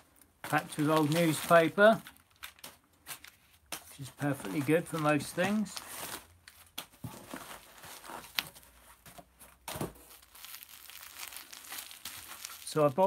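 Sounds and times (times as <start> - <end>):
newspaper rustling and crinkling: 0.0 - 13.0.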